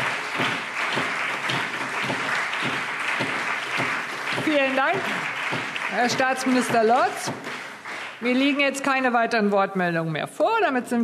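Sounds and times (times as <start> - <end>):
crowd applauding: 0.0 - 8.7.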